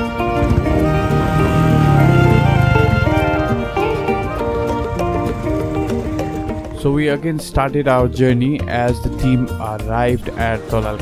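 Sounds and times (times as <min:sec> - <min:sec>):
background music melody: 0:00.0 - 0:11.0.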